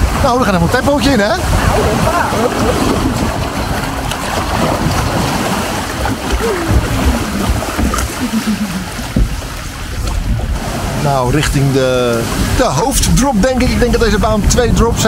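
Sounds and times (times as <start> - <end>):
water rushing and splashing: 0.0 - 15.0.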